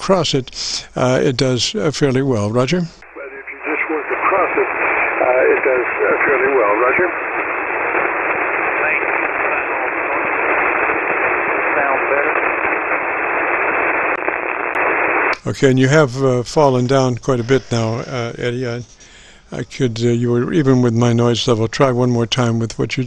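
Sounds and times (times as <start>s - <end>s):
radio static hiss: 0.0s - 23.0s
faint radio speech: 3.0s - 13.0s, 15.4s - 19.0s.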